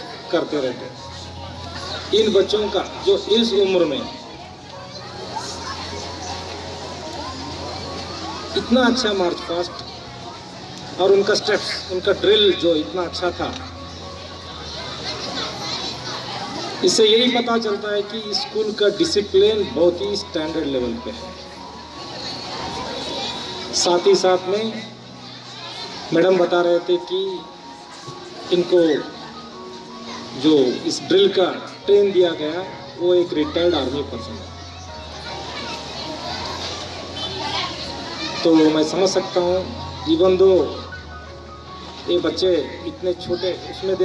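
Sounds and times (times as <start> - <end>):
man speaking through microphone: 0.0 - 1.1, 2.1 - 4.2, 8.6 - 9.8, 11.0 - 13.6, 16.8 - 21.3, 23.7 - 25.0, 26.1 - 27.5, 28.4 - 29.2, 30.4 - 34.4, 38.4 - 41.0, 42.0 - 44.0
children chattering: 0.0 - 44.0.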